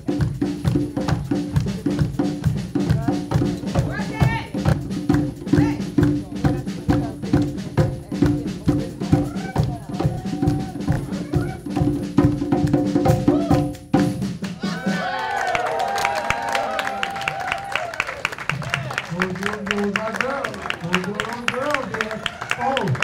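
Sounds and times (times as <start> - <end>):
conga and drum kit rhythm: 0.0 - 15.7
voices calling out: 5.4 - 12.0.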